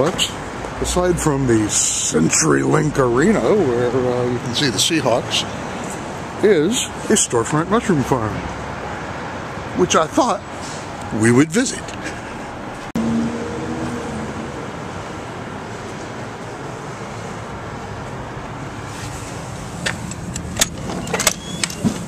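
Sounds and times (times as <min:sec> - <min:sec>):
city street traffic: 0:00.0 - 0:22.0.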